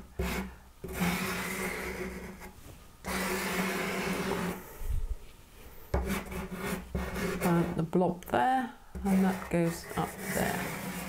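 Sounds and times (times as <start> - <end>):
pastel stick rubbing on paper: 6.0 - 7.8, 9.0 - 11.0.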